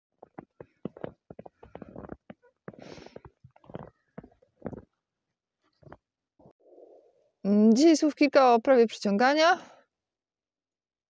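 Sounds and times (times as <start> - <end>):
footsteps crunching in snow: 0.1 - 4.9.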